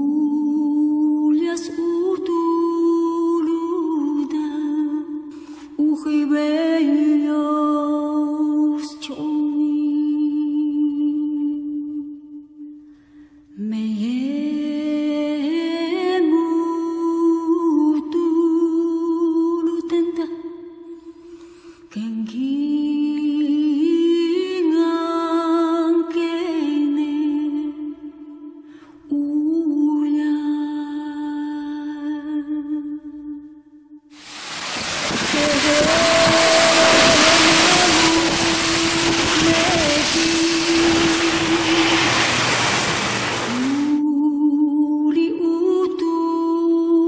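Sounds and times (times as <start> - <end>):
tyre spray on wet road: 34.2 - 44.0
wind on microphone: 34.2 - 44.0.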